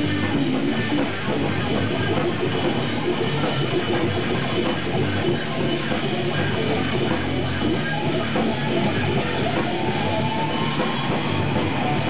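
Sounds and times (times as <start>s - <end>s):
drum kit: 0.0s - 12.0s
electric guitars: 0.0s - 12.0s.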